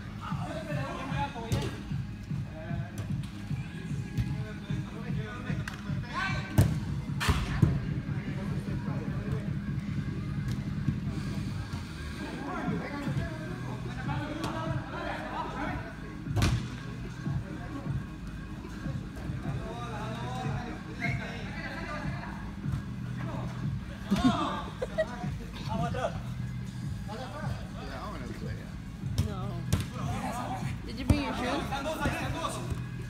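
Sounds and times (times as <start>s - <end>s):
music with steady bass pulse: 0.0s - 33.0s
soccer ball being struck: 6.6s - 7.8s, 16.4s - 16.7s, 29.1s - 30.0s.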